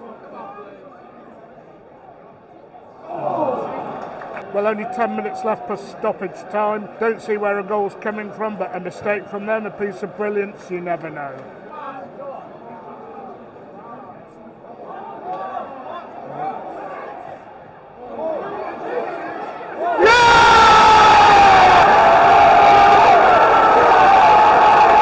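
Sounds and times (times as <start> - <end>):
stadium crowd murmuring: 0.0 - 25.0
crowd cheering loudly: 18.0 - 25.0
fans shouting: 18.0 - 25.0.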